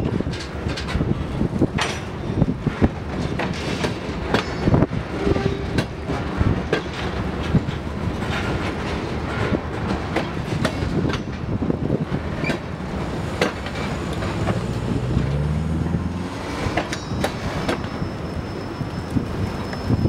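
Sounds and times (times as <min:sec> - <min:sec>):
freight train rumbling past: 0:00.0 - 0:20.0
wheels knocking and clicking on rails: 0:00.0 - 0:20.0.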